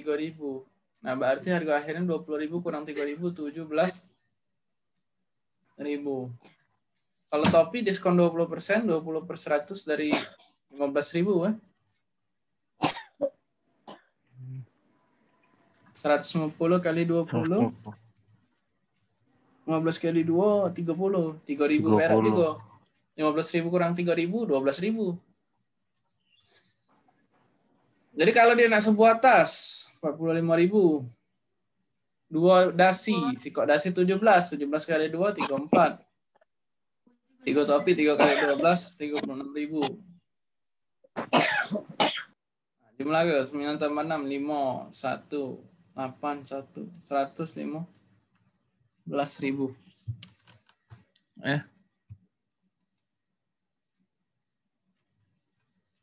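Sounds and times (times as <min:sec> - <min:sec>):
man coughing: 0:12.8 - 0:14.1, 0:38.2 - 0:40.0, 0:41.2 - 0:42.3
person's voice: 0:16.2 - 0:18.0, 0:21.7 - 0:22.7, 0:32.7 - 0:33.6, 0:37.4 - 0:40.1.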